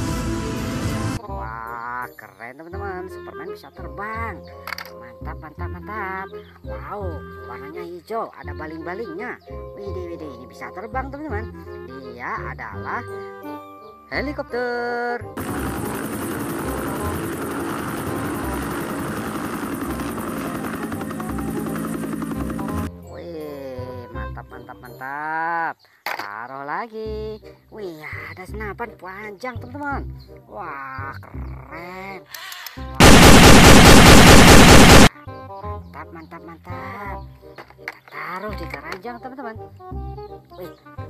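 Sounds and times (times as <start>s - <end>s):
helicopter rotor chopping: 15.4s - 22.9s, 33.0s - 35.1s
toy gun machine-gun sound effect: 15.4s - 22.9s, 33.0s - 35.1s
turbine engine noise: 15.4s - 22.9s, 33.0s - 35.1s.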